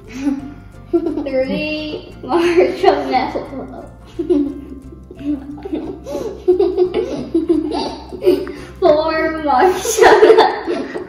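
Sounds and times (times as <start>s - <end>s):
young girls laughing: 0.0s - 8.7s, 9.8s - 11.0s.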